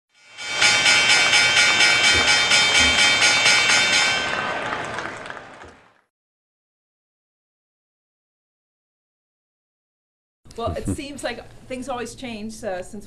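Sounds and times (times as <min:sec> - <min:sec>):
pulsing synthesized chord: 0:00.2 - 0:04.5.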